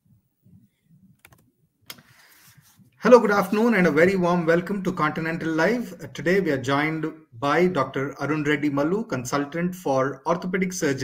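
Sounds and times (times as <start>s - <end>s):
soft rustle: 2.0s - 3.0s.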